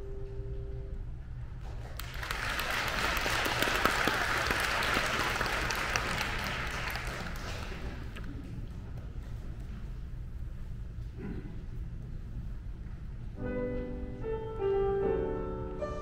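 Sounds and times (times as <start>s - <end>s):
audience applauding: 1.7s - 8.3s.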